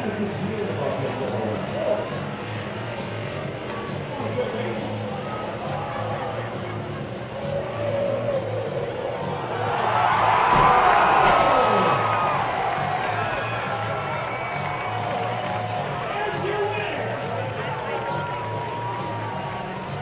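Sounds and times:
background music with steady beat: 0:00.0 - 0:20.0
crowd cheering: 0:00.0 - 0:20.0.

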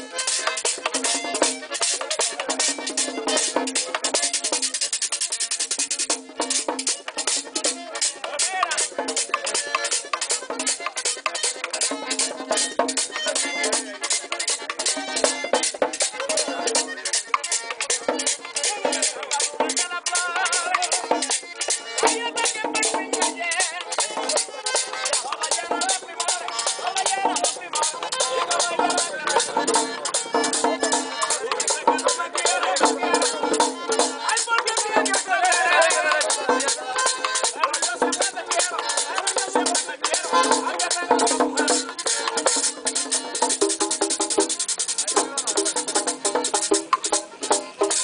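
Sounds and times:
button accordion melody: 0:00.0 - 0:48.0
drums and congas beat: 0:00.0 - 0:48.0.

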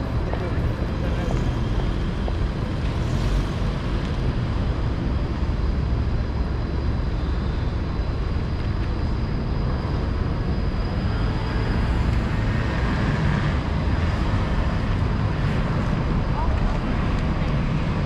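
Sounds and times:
road traffic rumble: 0:00.0 - 0:18.0.

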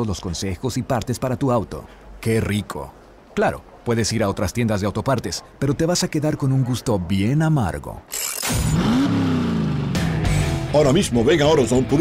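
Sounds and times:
car engine revving: 0:08.4 - 0:10.8.

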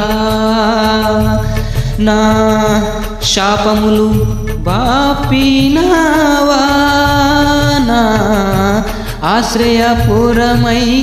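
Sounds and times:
karaoke backing track: 0:00.0 - 0:11.0
man singing devotional song: 0:00.0 - 0:11.0.

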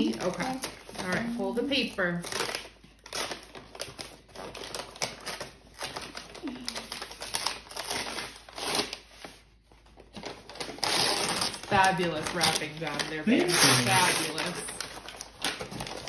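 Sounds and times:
gift wrapping paper crackling and tearing: 0:00.0 - 0:16.0.

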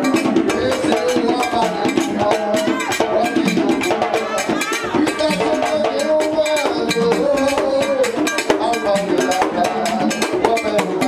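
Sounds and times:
hand drums: 0:00.0 - 0:11.0
man singing into microphone: 0:00.0 - 0:11.0.

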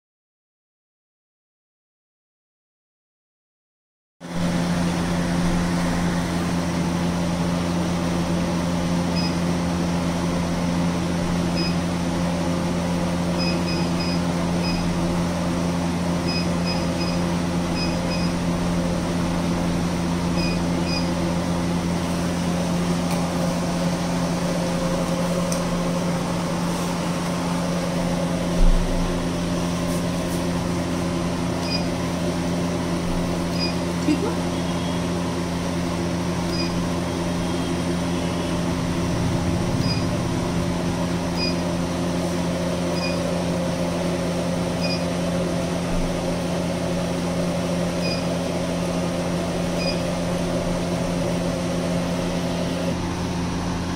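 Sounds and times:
machine cooling hum: 0:04.2 - 0:53.9
short high beeps: 0:39.8 - 0:40.1, 0:41.4 - 0:41.6, 0:43.0 - 0:43.2.

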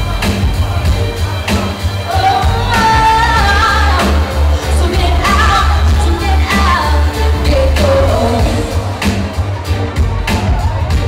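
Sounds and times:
pop backing music with heavy bass: 0:00.0 - 0:11.0
woman singing into microphone: 0:02.1 - 0:08.9.

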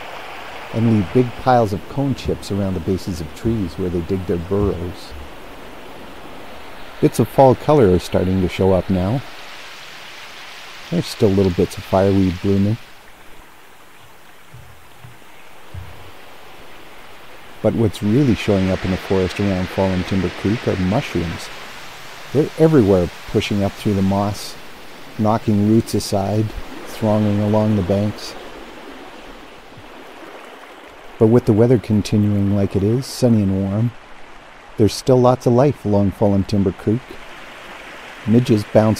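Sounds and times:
creek water rushing: 0:00.0 - 0:38.9.

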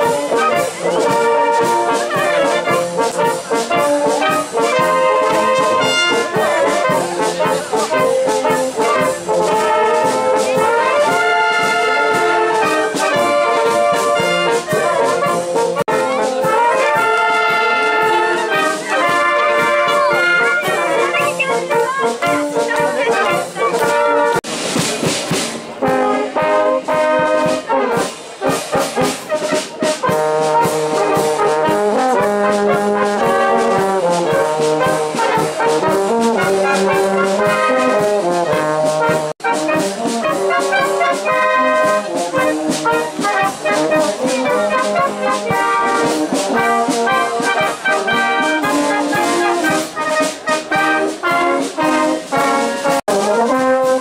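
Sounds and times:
wind band playing: 0:00.0 - 0:54.0.

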